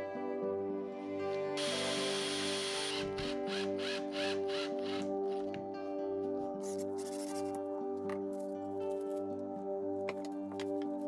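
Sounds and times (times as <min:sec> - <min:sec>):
background music: 0:00.0 - 0:11.0
cordless drill driving screw: 0:01.6 - 0:05.1.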